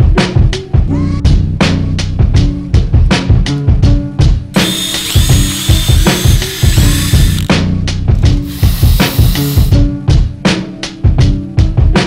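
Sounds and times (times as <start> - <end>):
background music with drum beat: 0.0 - 12.0
cordless drill whining: 4.6 - 7.5, 8.2 - 9.8.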